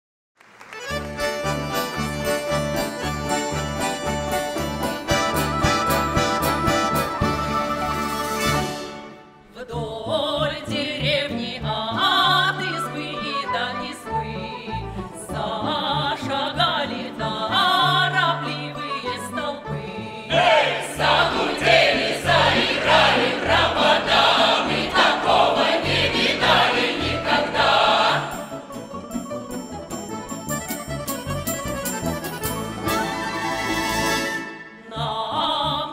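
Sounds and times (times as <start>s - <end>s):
folk instrument orchestra playing: 0.7s - 9.5s, 12.0s - 35.0s
folk choir singing: 9.5s - 28.8s, 34.8s - 35.9s.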